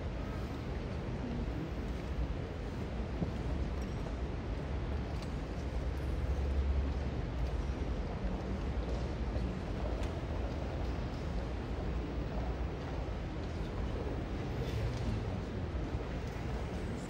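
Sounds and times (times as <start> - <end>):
auditorium room noise: 0.0 - 17.0.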